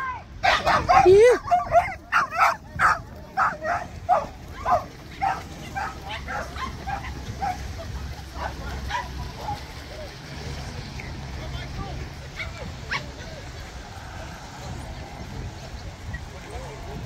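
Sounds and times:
dog barking and yipping: 0:00.4 - 0:07.6.

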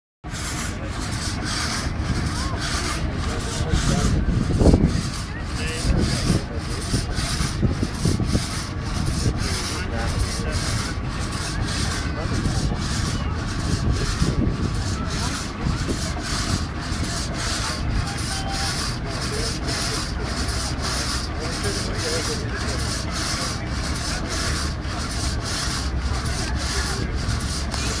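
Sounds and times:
frame saw rasping through log: 0:00.2 - 0:28.0.

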